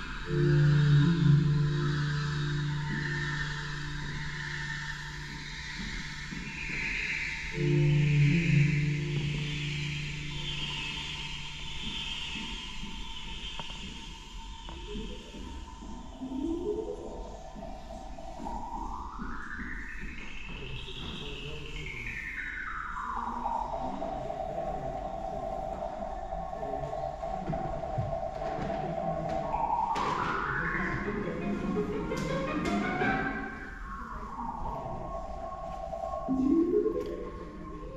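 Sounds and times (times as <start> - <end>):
gliding electronic tone: 0.0 - 13.8, 16.1 - 37.9
low electronic drone: 0.0 - 37.9.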